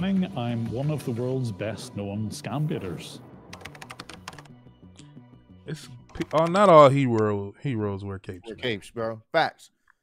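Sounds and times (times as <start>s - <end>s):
quiet background music: 0.0s - 9.7s
computer keyboard typing: 3.5s - 4.5s, 6.1s - 6.8s.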